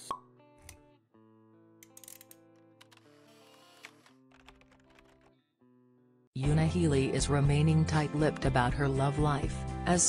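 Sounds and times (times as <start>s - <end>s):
soft music: 6.4s - 10.0s.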